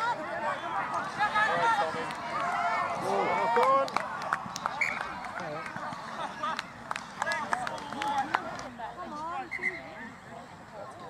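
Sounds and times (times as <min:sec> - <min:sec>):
voices shouting and calling: 0:00.0 - 0:11.0.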